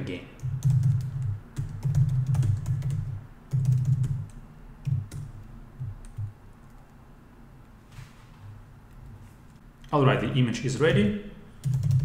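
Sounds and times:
laptop keyboard typing: 0:00.4 - 0:07.0, 0:11.6 - 0:12.0.

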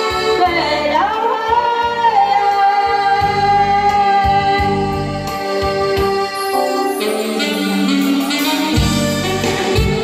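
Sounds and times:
woman singing into microphone: 0:00.0 - 0:05.7
electronic keyboard bass line: 0:03.1 - 0:10.0.

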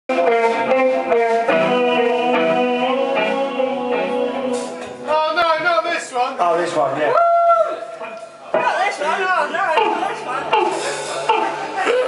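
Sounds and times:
electric guitar ringing chords: 0:00.1 - 0:05.1.

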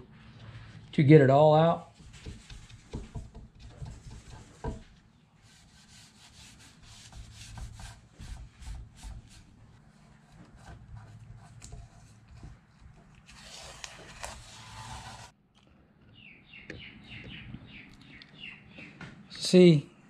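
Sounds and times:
rubbing on wooden board: 0:01.9 - 0:15.3
tape peeling off wood: 0:11.4 - 0:15.3.

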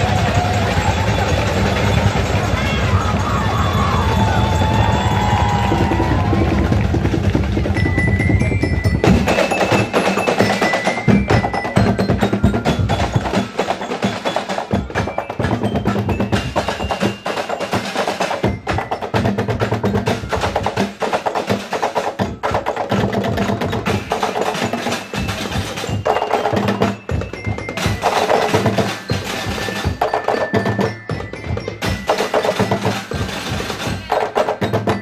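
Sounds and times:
marching percussion band: 0:00.0 - 0:35.0.

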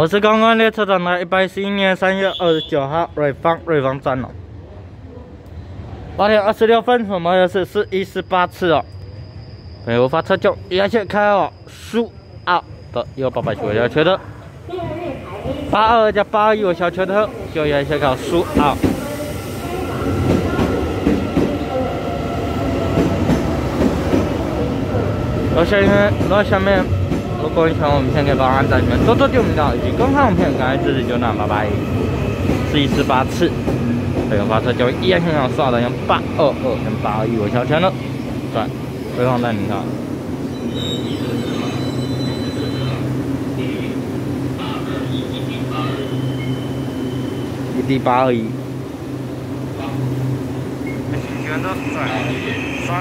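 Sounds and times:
train cars rumbling past: 0:00.0 - 0:53.0
faint high whine: 0:07.2 - 0:18.5.

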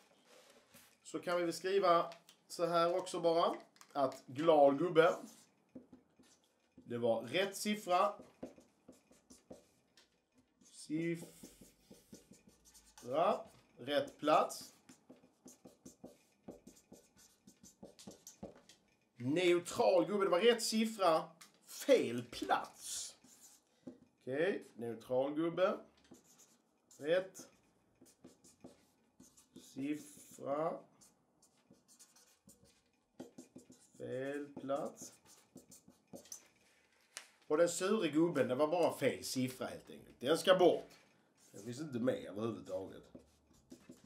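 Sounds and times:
felt-tip marker writing on paper: 0:08.0 - 0:09.9, 0:10.6 - 0:18.7, 0:23.2 - 0:24.0, 0:26.1 - 0:36.6, 0:42.9 - 0:44.0
felt-tip marker squeaking on paper: 0:31.0 - 0:34.0.

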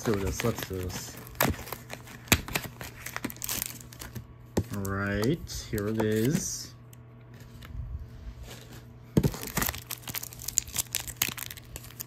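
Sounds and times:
foil wrapper crinkling: 0:00.0 - 0:06.4, 0:09.2 - 0:12.0.

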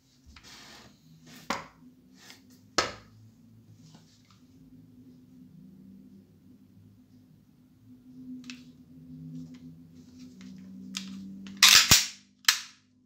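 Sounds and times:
pistol handling clicks: 0:11.6 - 0:12.8
pistol slide clacking: 0:11.6 - 0:12.8.

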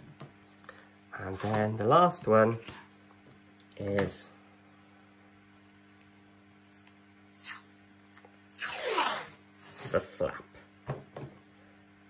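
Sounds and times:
tape tearing off roll: 0:07.4 - 0:07.7, 0:08.5 - 0:10.1.

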